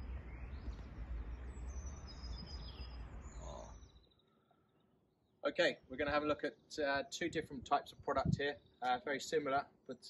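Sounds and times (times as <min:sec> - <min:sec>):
small birds chirping: 0:00.0 - 0:06.8.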